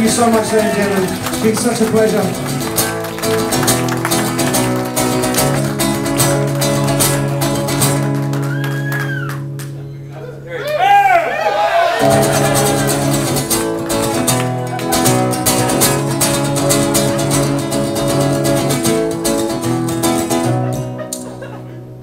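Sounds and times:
acoustic guitar strumming: 0:00.0 - 0:10.2, 0:12.0 - 0:22.0
audience whooping: 0:00.1 - 0:05.8, 0:08.3 - 0:16.1.

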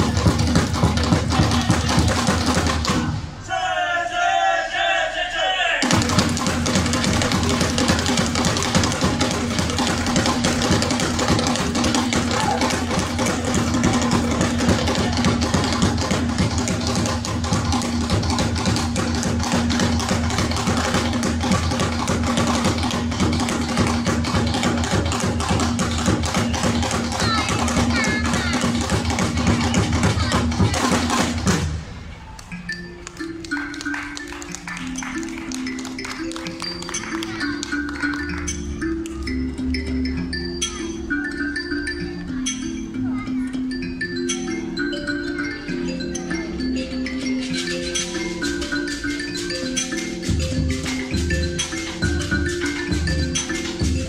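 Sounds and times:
fast hand drumming: 0:00.0 - 0:03.2, 0:05.8 - 0:31.8, 0:46.5 - 0:54.0.

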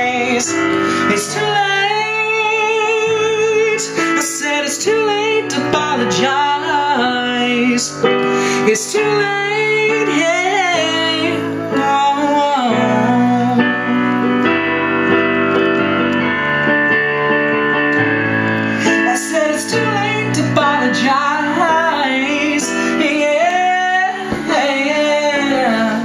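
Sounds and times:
digital piano chords: 0:00.0 - 0:26.0.

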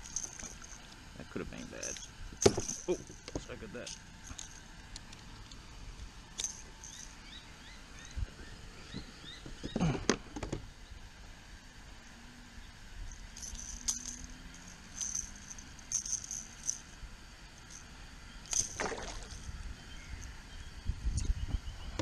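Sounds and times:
light metallic clinks: 0:00.0 - 0:05.6, 0:06.3 - 0:07.2, 0:13.1 - 0:17.0
fish splashing in water: 0:18.7 - 0:19.3.

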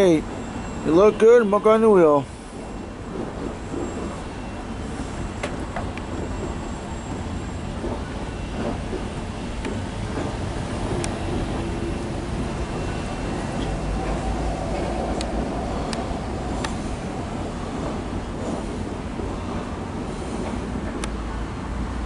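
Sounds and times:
train wheels rumbling on track: 0:00.0 - 0:22.0.

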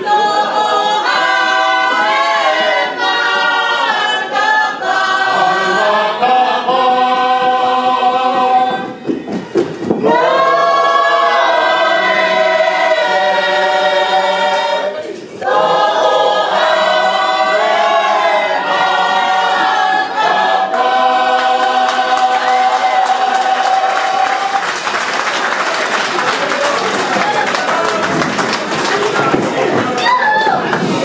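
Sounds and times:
church choir singing a hymn: 0:00.0 - 0:09.0, 0:09.9 - 0:24.6.

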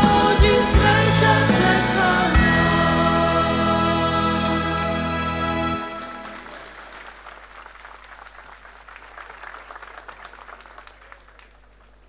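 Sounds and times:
large crowd applauding: 0:05.9 - 0:12.0.

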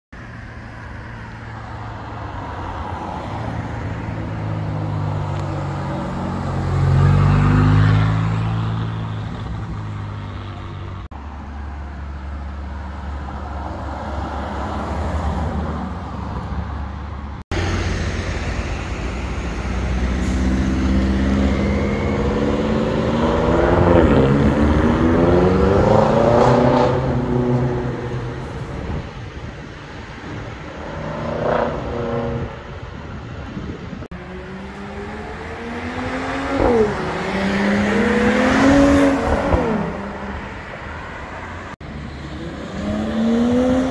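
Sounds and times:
car engine revving: 0:19.3 - 0:28.6, 0:34.1 - 0:40.5, 0:42.3 - 0:43.9.

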